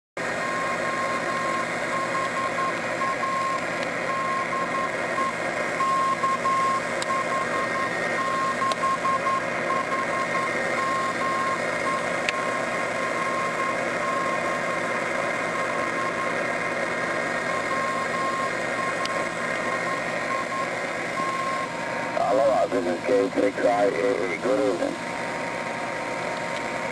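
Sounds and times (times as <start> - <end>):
morse code beacon tone: 0.4 - 14.9, 15.7 - 16.4, 17.4 - 25.5
radio receiver hiss: 9.4 - 26.9.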